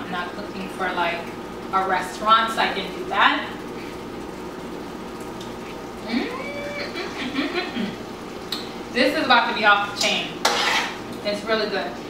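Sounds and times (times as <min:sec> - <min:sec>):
food cooking hiss: 0:00.2 - 0:11.8.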